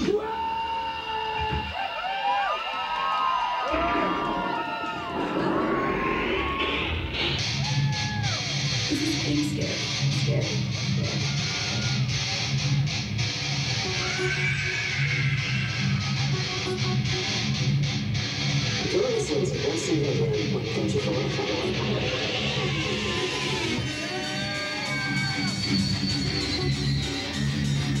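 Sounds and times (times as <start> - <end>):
rising sweep: 3.7 - 8.4
guitar riff: 3.7 - 28.0.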